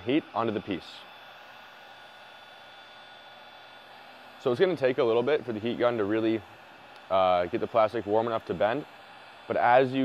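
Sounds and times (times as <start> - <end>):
heat gun blowing hot air: 0.0 - 10.0.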